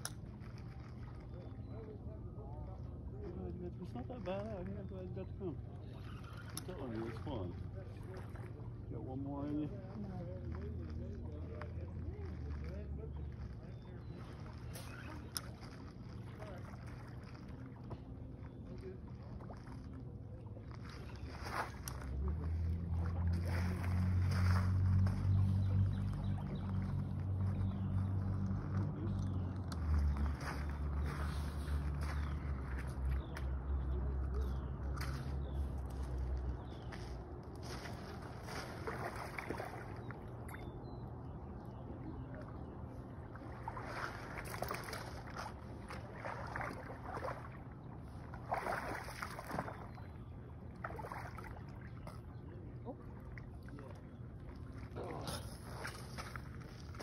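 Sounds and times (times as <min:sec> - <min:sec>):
fish splashing in shallows: 0:37.2 - 0:40.8, 0:42.4 - 0:52.4.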